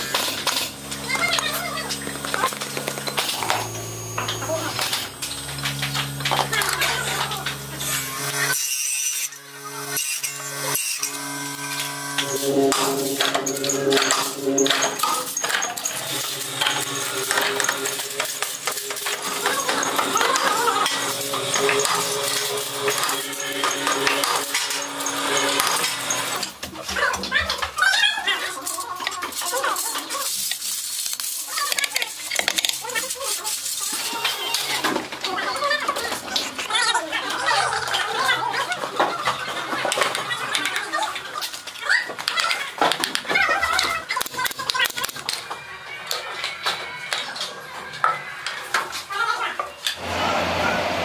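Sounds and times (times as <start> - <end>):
hard objects clacking together: 10.0 - 50.0
background music with held tones: 11.9 - 20.0.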